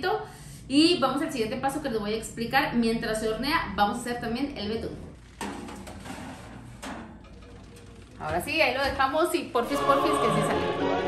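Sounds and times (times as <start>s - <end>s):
metallic clatter: 5.2s - 8.9s
metal pan sliding onto oven rack: 5.4s - 8.1s.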